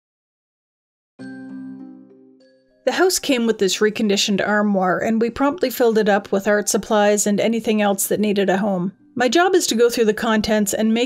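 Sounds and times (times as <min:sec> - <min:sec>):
bell-like chime chord: 0:01.2 - 0:02.9
woman narrating: 0:02.9 - 0:11.0.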